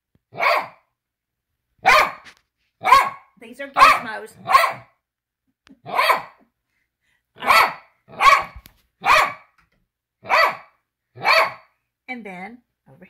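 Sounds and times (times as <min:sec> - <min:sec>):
dog barking: 0:00.3 - 0:00.9, 0:01.8 - 0:05.0, 0:05.8 - 0:06.4, 0:07.4 - 0:09.6, 0:10.2 - 0:11.7.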